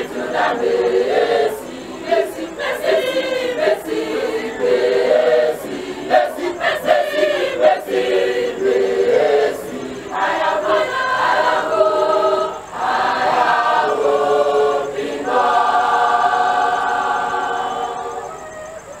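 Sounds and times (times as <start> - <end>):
choir singing in harmony: 0.0 - 19.0.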